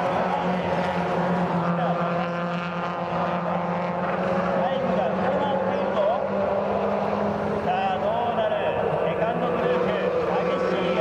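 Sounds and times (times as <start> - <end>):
race car engines revving and passing: 0.0 - 11.0.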